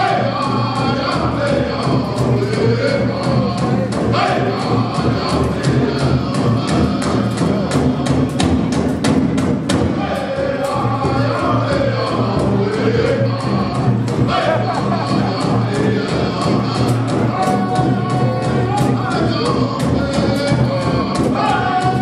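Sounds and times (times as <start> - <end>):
group singing: 0.0 - 8.9, 9.8 - 22.0
steady drum beat: 0.0 - 22.0.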